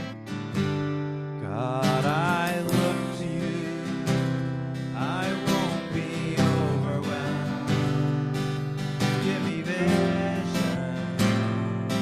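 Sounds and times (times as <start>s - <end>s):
acoustic guitar strumming chords: 0.0s - 12.0s
worship band music: 1.2s - 12.0s.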